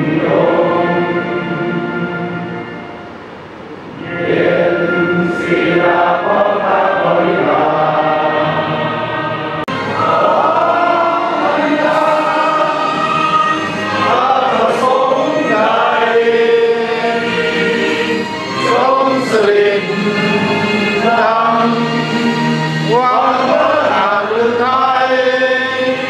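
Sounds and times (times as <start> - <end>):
group singing in unison: 0.0 - 2.3, 4.0 - 26.0.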